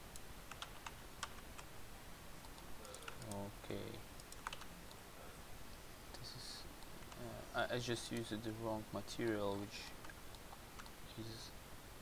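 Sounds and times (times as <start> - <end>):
keyboard and mouse clicking: 0.1 - 1.7, 2.4 - 3.5, 4.2 - 5.0, 10.0 - 11.0.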